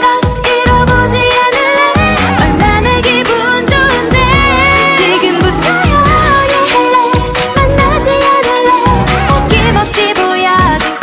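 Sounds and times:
upbeat dance-pop backing: 0.0 - 11.0
woman singing: 0.0 - 11.0.

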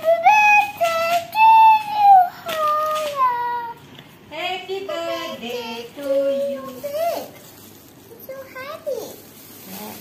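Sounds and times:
young child singing: 0.0 - 3.8.

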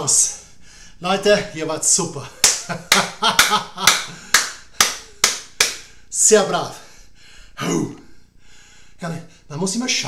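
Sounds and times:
person clapping hands: 2.4 - 5.9.

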